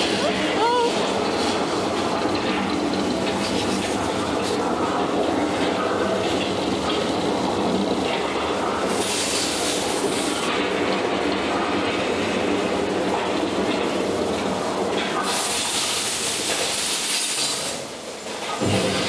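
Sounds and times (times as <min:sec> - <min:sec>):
loud ride rumble: 0:00.0 - 0:16.5, 0:18.4 - 0:19.0.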